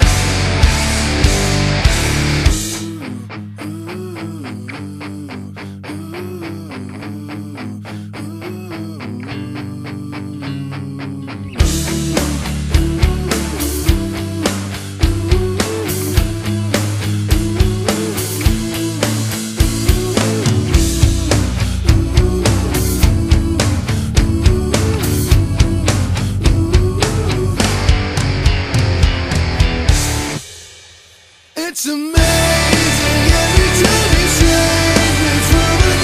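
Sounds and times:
drums crashing: 0.0 - 2.9, 11.6 - 36.0
rock band playing: 0.0 - 3.0, 11.6 - 30.8, 32.2 - 36.0.

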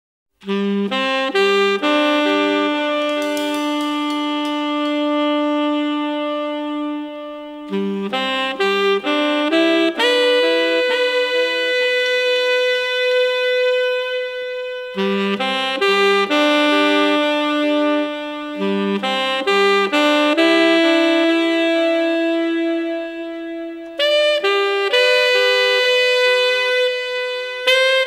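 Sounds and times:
jazz saxophone: 0.4 - 28.0.

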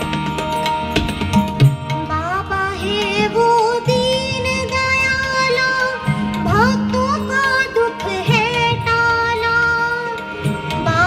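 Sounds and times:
harmonium: 0.0 - 11.0
woman singing devotional song: 2.0 - 11.0.

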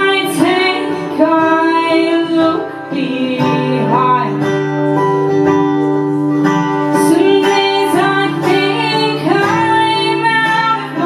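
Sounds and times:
woman singing: 0.0 - 5.1, 6.9 - 11.0
acoustic guitar: 0.0 - 11.0.

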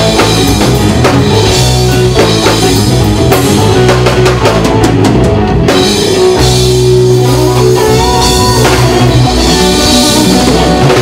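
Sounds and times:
drum kit: 0.0 - 11.0
electric bass: 0.0 - 11.0
electric guitar: 0.0 - 11.0
keyboard: 0.0 - 11.0.

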